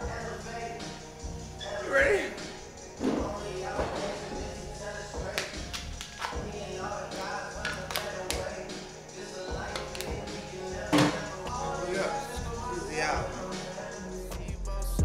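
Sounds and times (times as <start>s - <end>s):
indistinct voices: 0.0s - 15.0s
music playing: 0.0s - 15.0s.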